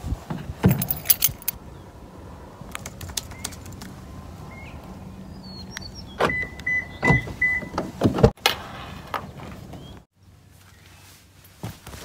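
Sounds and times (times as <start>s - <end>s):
handling knocks and thumps: 0.2s - 1.6s, 7.1s - 8.4s
car chime beeps: 6.2s - 7.8s
car door shutting: 6.2s - 8.4s.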